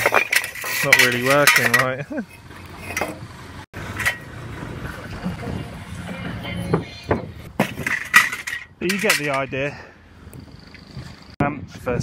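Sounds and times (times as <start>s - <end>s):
metal clamps clinking on bricks: 0.0s - 3.2s, 7.2s - 9.6s.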